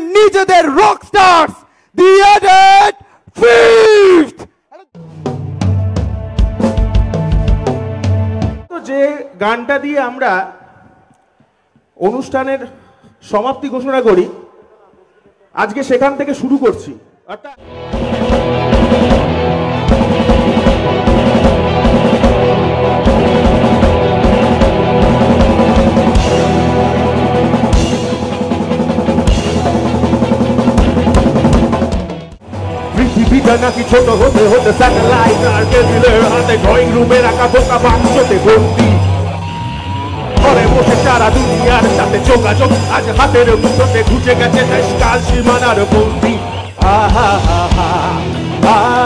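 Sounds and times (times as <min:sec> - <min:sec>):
man shouting into a microphone: 0:00.0 - 0:05.0
rock band playing: 0:05.0 - 0:08.7, 0:17.6 - 0:49.0
bass drum beat: 0:18.0 - 0:39.2, 0:40.4 - 0:49.0.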